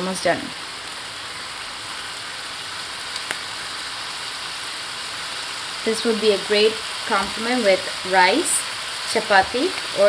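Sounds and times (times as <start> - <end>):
food sizzling in a wok: 0.0 - 10.0.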